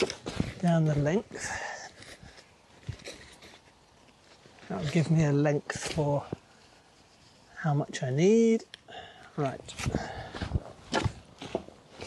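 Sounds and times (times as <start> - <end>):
footsteps on soil and path: 0.0 - 7.5, 9.6 - 12.0.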